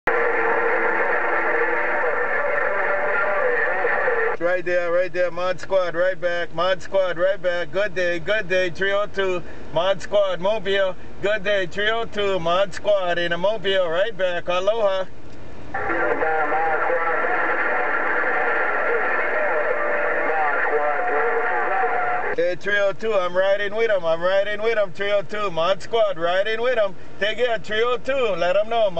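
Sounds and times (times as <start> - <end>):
radio carrier tones: 0.1 - 5.0, 15.7 - 22.4
radio static hiss: 0.1 - 7.9, 15.7 - 28.9
muffled voice over radio: 0.1 - 15.1, 15.7 - 28.9.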